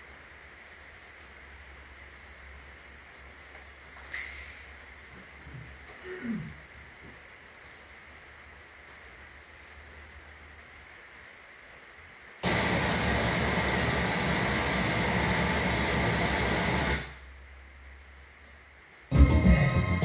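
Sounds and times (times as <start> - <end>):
forge burners hissing: 0.0 - 20.0.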